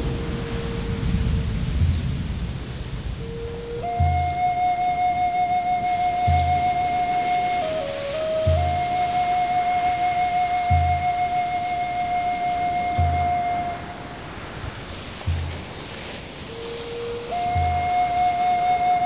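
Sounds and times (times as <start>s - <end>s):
deep drum beat: 0.0s - 19.0s
flute playing long notes: 0.0s - 19.0s
steady hiss: 0.0s - 19.0s.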